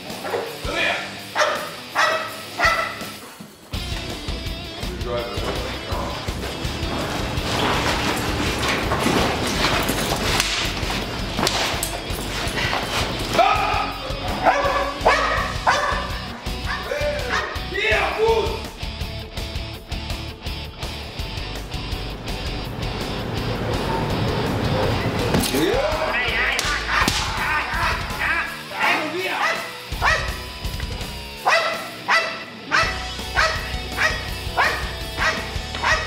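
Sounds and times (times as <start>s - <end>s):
background music: 0.0s - 36.0s
dog barking: 1.3s - 3.3s, 14.4s - 17.7s, 29.4s - 30.5s, 31.4s - 36.0s.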